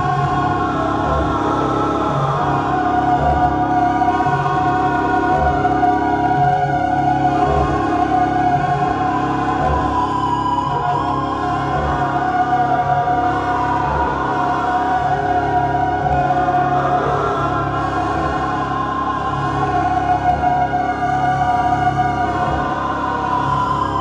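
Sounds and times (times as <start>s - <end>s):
electronic drone music: 0.0s - 24.0s
low pulse: 0.0s - 24.0s.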